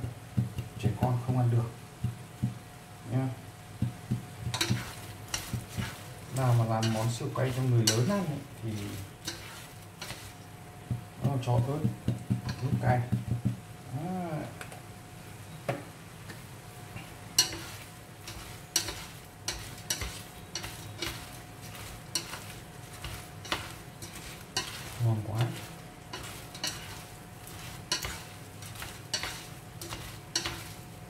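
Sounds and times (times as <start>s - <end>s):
prawns sizzling in a frying pan: 0.0s - 31.0s
chopsticks knocking against pan: 10.8s - 13.6s.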